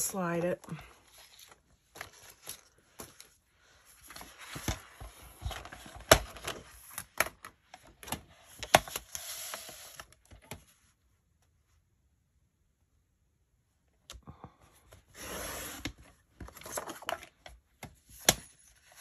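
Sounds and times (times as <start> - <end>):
paper rustling and sliding: 8.6 - 10.3.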